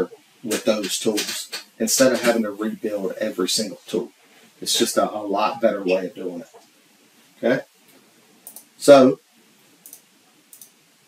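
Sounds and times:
computer mouse clicks: 8.4s - 8.7s, 9.8s - 10.8s.

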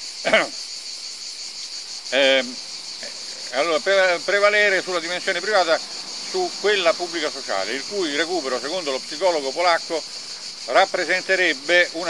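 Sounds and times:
insects chorus: 0.0s - 12.0s
man's short vocal sound: 0.3s - 0.6s.

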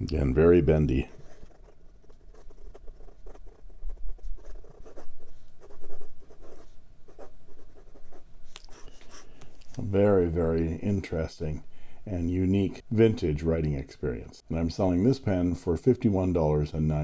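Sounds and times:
fountain pen scratching on paper: 0.6s - 9.3s.

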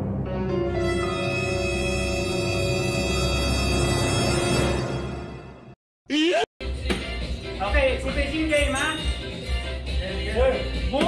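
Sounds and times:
sustained tone music: 0.0s - 5.8s.

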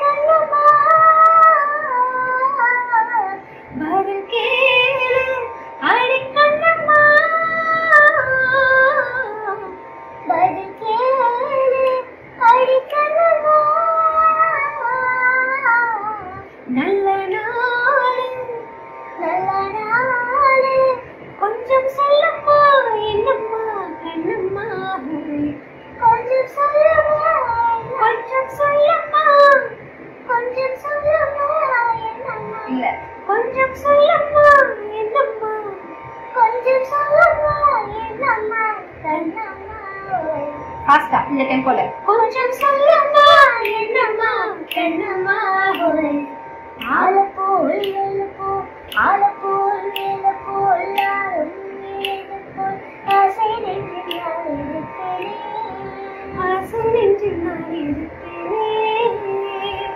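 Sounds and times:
woman singing: 0.0s - 59.9s
boy singing: 36.4s - 40.6s, 42.0s - 59.9s.

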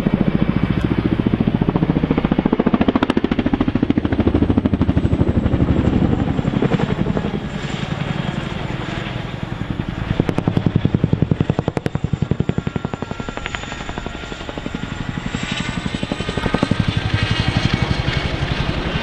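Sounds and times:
helicopter rotor blades beating: 0.0s - 19.0s.

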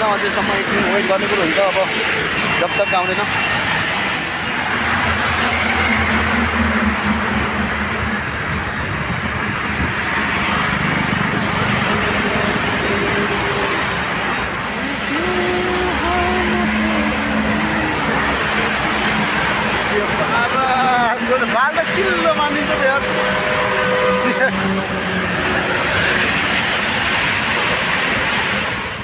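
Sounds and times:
road traffic: 0.0s - 29.0s
faint voices: 14.6s - 19.0s.

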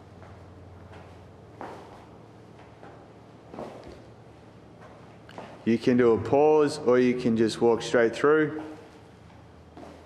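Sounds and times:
faint steady hum: 0.0s - 10.0s
muffled footfall thuds on rubber floor: 0.2s - 4.1s, 9.8s - 10.0s.

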